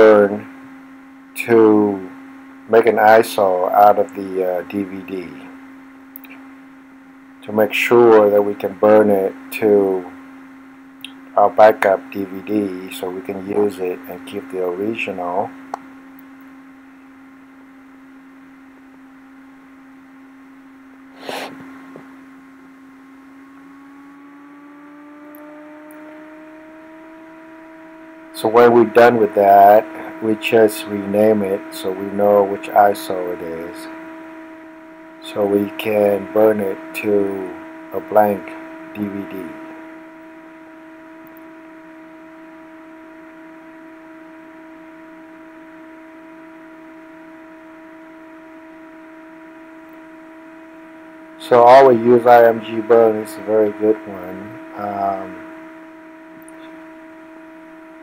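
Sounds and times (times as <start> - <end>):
disc drive whine: 0.0 - 58.0
electrical hum: 0.0 - 58.0.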